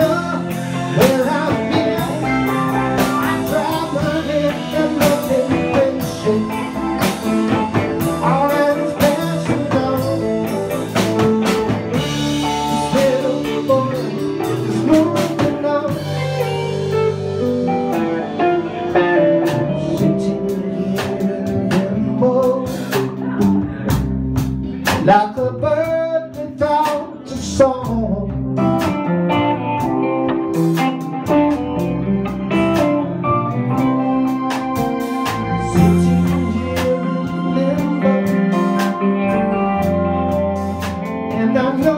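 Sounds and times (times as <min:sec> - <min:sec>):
blues-rock band playing: 0:00.0 - 0:41.9
electric guitar lead line: 0:00.0 - 0:41.9.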